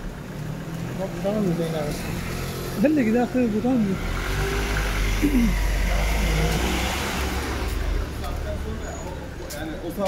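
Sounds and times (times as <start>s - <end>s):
vehicle engine rumble and road noise: 0.0s - 10.0s.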